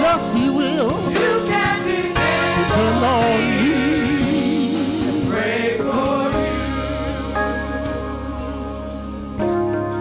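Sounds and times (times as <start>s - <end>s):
held organ chords with bass: 0.0s - 10.0s
gospel choir singing: 0.9s - 9.9s.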